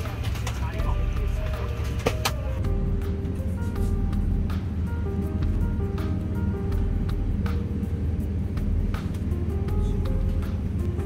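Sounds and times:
airliner cabin drone: 0.0s - 11.0s
soft background music: 0.0s - 11.0s.

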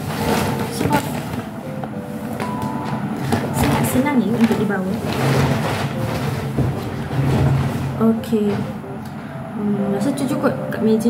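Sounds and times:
fabric bag rustling: 0.0s - 8.9s.

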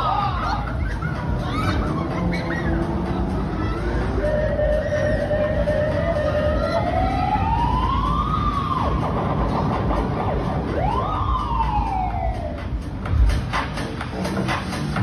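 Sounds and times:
ride noise rumble: 0.0s - 15.0s
siren wail: 3.4s - 12.8s.

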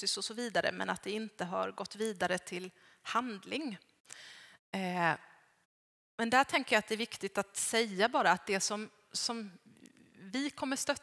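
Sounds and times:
woman breathing in: 2.8s - 3.0s, 4.1s - 4.6s.

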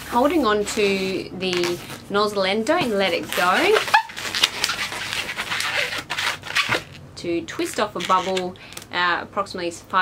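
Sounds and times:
balloon rubbing and crackling: 1.4s - 7.0s, 7.6s - 8.6s.

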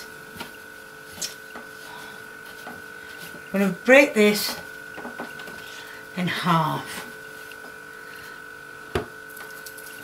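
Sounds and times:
electrical hum with high whine: 0.0s - 10.0s.

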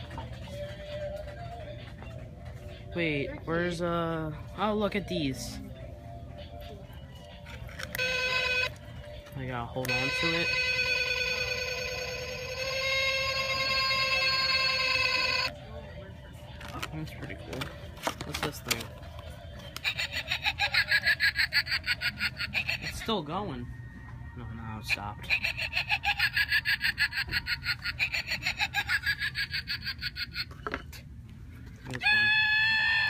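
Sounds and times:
recorded cackling laugh: 19.8s - 23.0s, 25.2s - 30.9s.

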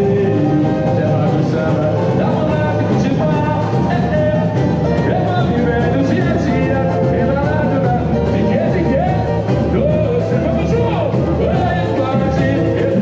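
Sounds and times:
person singing: 0.0s - 13.0s
samba band playing: 0.0s - 13.0s.

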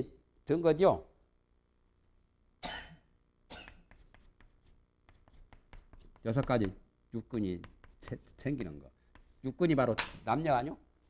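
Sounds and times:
chalk scratching on blackboard: 3.7s - 6.8s, 7.4s - 9.6s.

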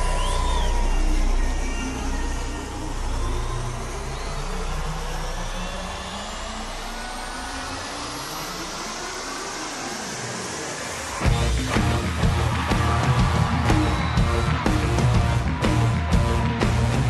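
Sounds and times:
electronic riser with whistling tones: 0.0s - 11.3s, 13.5s - 14.9s.

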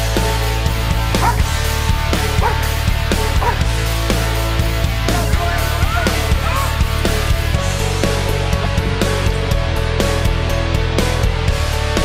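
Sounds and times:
rock music with heavy guitar: 0.0s - 12.0s
dog barking: 1.2s - 1.5s, 2.1s - 3.7s.

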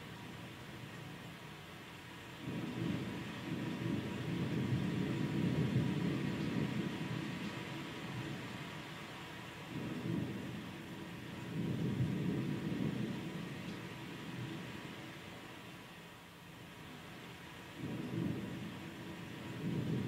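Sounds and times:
steady hiss: 0.0s - 20.0s
low rumbling soundtrack over speakers: 2.2s - 15.6s, 17.6s - 20.0s.

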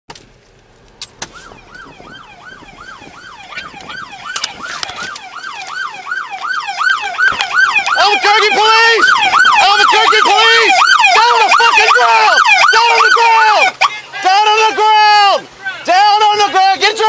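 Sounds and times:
police siren yelp: 1.2s - 15.4s.

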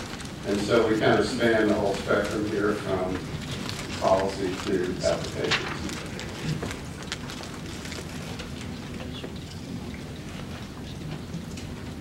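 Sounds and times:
meeting room background hiss: 0.0s - 12.0s
faint clicks and rustles: 1.7s - 11.9s.

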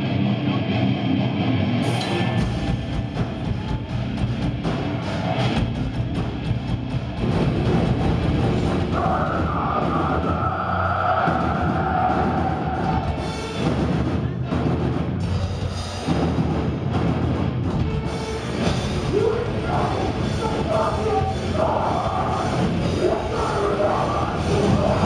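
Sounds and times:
metalcore band playing live: 0.0s - 25.0s.

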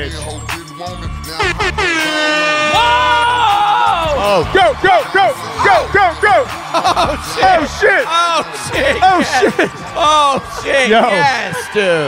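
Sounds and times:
hip-hop music: 0.0s - 12.0s
air horn blare: 1.3s - 3.5s.

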